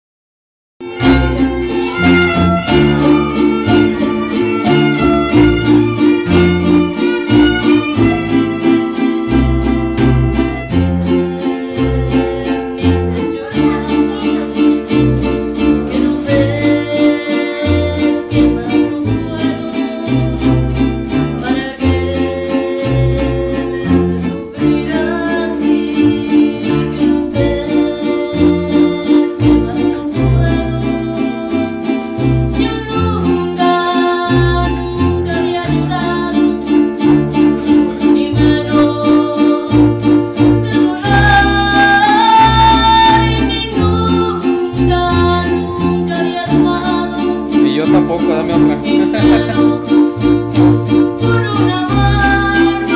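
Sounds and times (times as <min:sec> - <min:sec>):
plucked bass guitar notes: 0:00.8 - 0:52.9
strummed guitars: 0:00.8 - 0:52.9
violin: 0:00.8 - 0:52.9
woman singing: 0:00.8 - 0:52.9.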